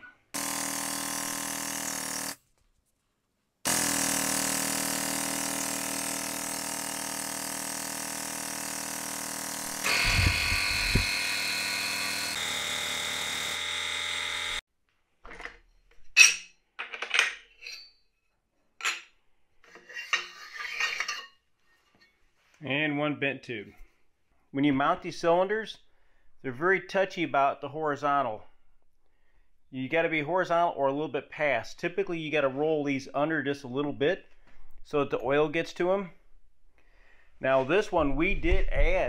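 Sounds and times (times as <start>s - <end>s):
air-driven pump running: 0.4s - 2.4s, 3.7s - 14.6s.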